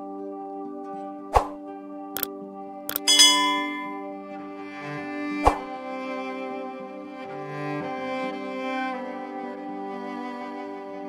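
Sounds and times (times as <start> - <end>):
calm background music: 0.0 - 11.0
sharp clicks: 2.9 - 3.8.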